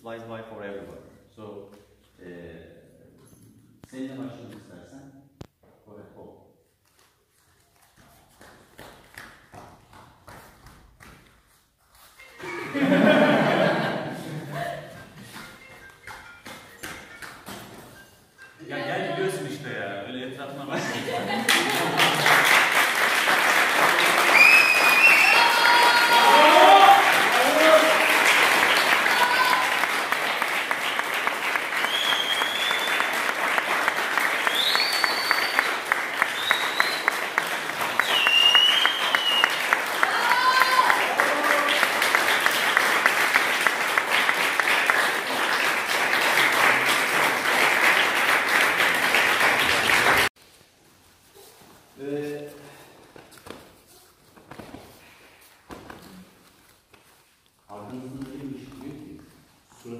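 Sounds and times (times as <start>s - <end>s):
group clapping: 7.8s - 11.4s, 12.4s - 17.8s, 20.7s - 50.4s.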